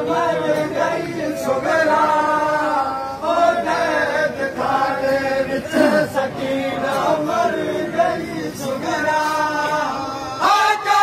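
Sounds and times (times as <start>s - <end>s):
men chanting a lament in chorus: 0.0s - 11.0s.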